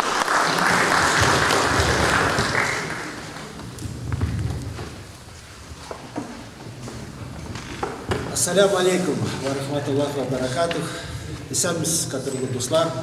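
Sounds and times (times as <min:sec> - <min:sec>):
audience applauding: 0:00.0 - 0:03.8
microphone handling thumps: 0:03.8 - 0:05.1.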